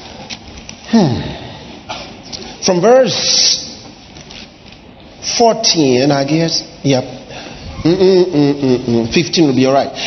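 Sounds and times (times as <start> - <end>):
faint background noise: 0.0 - 10.0
man's amplified voice: 2.6 - 3.8, 5.2 - 7.3, 7.9 - 10.0.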